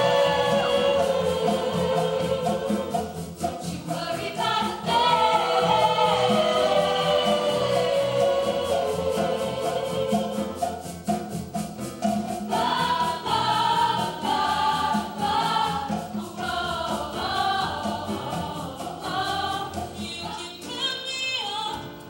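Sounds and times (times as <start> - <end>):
accompaniment with steady beat: 0.0 - 20.8
choir singing: 0.0 - 21.1.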